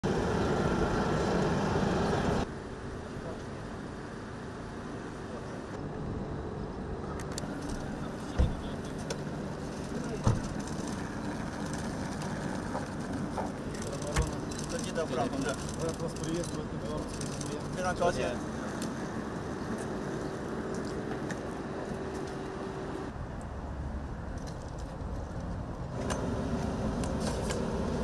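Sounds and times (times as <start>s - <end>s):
jet airliner taxiing: 0.0s - 23.1s.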